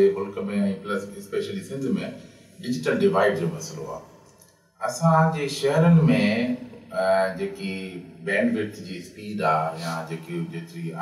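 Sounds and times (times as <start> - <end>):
man speaking slowly: 0.0 - 4.0, 4.8 - 11.0.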